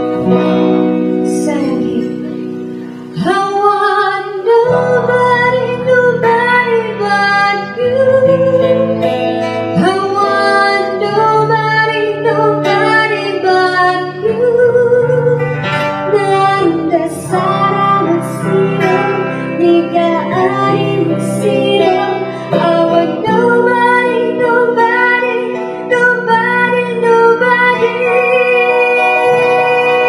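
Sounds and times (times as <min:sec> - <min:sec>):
strummed guitars: 0:00.0 - 0:30.0
woman singing pop song: 0:00.0 - 0:30.0.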